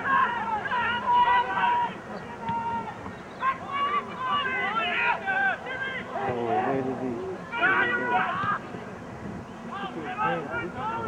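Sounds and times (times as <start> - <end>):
people shouting wordless calls: 0.0 - 9.0, 9.6 - 11.0.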